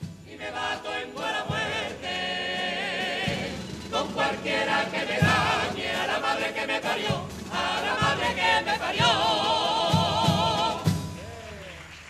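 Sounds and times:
deep drum beat: 0.0s - 11.4s
men singing in chorus: 0.2s - 11.2s.

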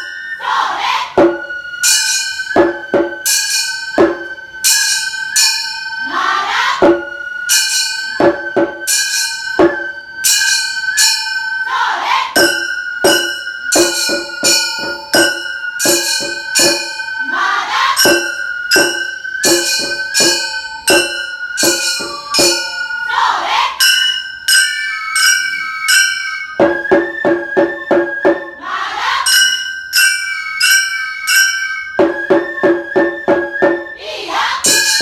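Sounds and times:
flute line: 0.0s - 35.0s
drum: 1.1s - 1.6s, 2.5s - 4.4s, 6.6s - 7.2s, 8.2s - 10.0s, 12.4s - 17.0s, 17.8s - 22.7s, 32.0s - 35.0s.

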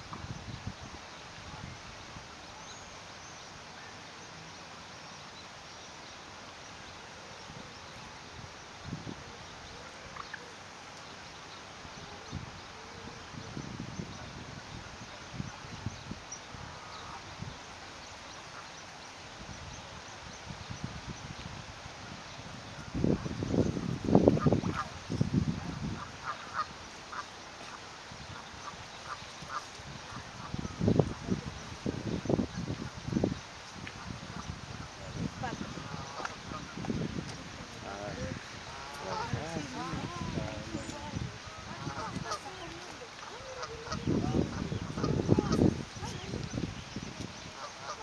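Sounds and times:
dry reeds rustling and crackling: 14.4s - 48.0s.

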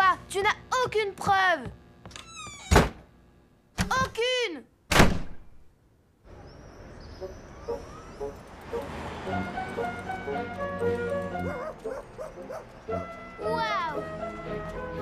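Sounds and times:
light cartoon music: 7.2s - 15.0s.

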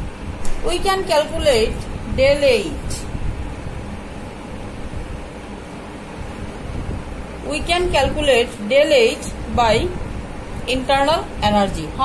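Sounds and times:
low fluctuating rumble: 0.0s - 12.0s.

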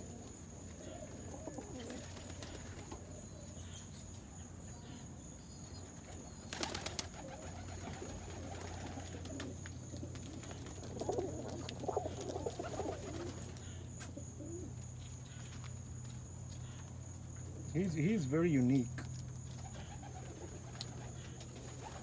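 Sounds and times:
pigeons cooing: 0.0s - 3.5s, 6.0s - 15.5s, 19.5s - 22.0s.

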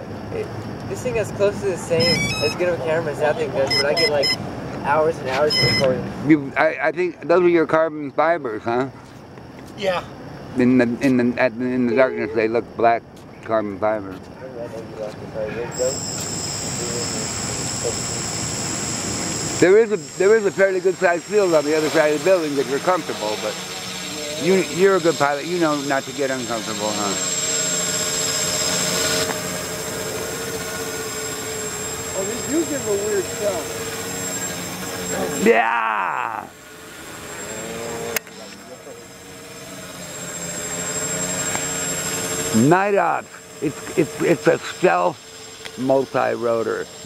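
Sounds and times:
drone motors whining: 0.4s - 6.2s, 15.0s - 47.0s.

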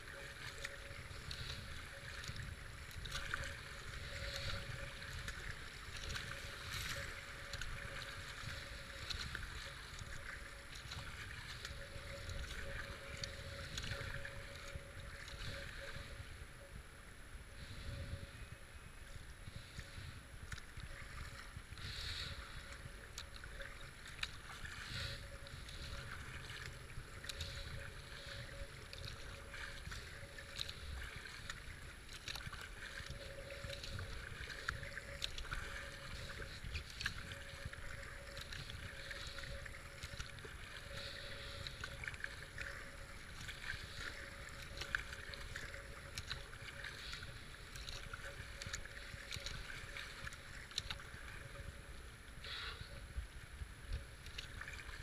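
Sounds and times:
paddle swish and splash: 0.0s - 16.4s, 19.5s - 55.0s
rush of moving water: 0.0s - 55.0s
wind rumble on camera: 0.0s - 55.0s.

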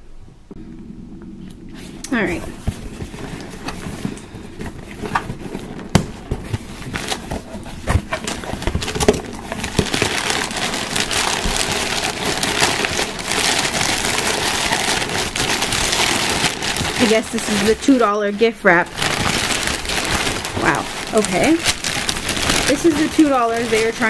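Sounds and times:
gift wrap paper rustling: 2.1s - 24.0s.

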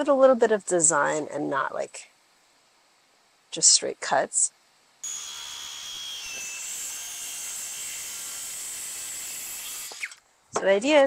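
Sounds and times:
circular saw whining: 5.0s - 10.2s.

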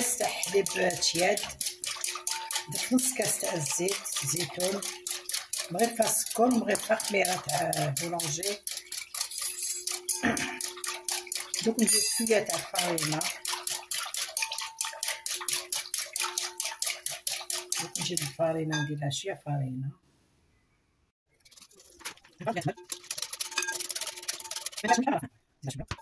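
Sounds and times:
whisk beating in glass bowl: 0.0s - 18.9s, 21.3s - 25.2s.

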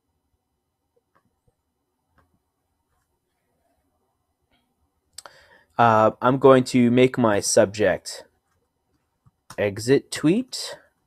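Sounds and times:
man's voice: 5.8s - 8.2s, 9.6s - 10.8s.

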